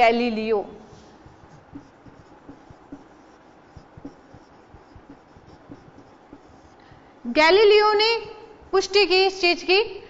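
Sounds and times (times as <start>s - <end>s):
marker writing on whiteboard: 0.8s - 9.2s.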